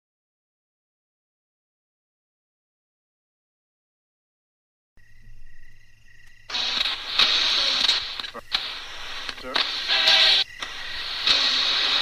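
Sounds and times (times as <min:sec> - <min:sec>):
radio static hiss: 0:06.4 - 0:12.0.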